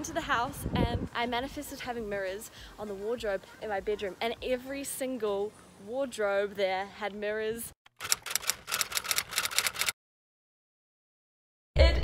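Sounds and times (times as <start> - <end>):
typewriter key clacks: 8.0 - 9.9.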